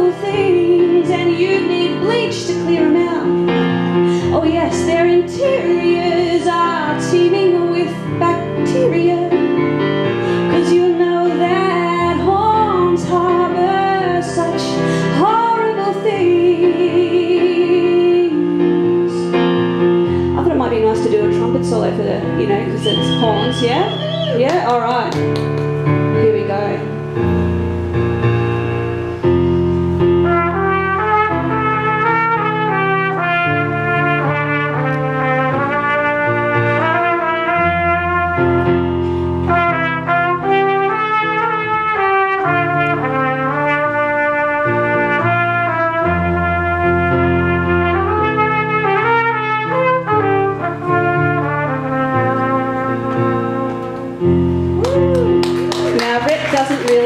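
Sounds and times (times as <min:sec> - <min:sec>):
trumpet solo melody: 0:22.5 - 0:25.4, 0:26.1 - 0:55.8
sustained instrumental chords: 0:25.1 - 0:54.8.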